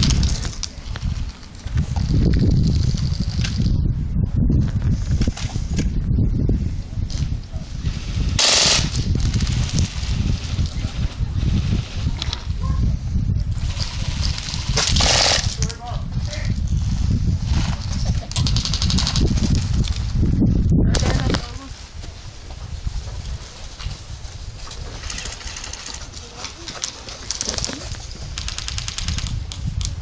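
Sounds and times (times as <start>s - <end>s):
wind on microphone: 0.0s - 30.0s
automatic airsoft gunfire: 8.4s - 9.0s.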